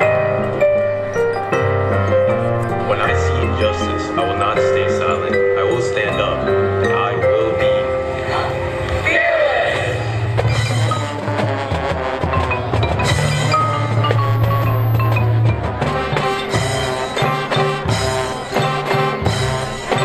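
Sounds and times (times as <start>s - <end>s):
marching band playing: 0.0s - 20.0s
mallet percussion ringing: 10.5s - 11.4s, 12.2s - 20.0s.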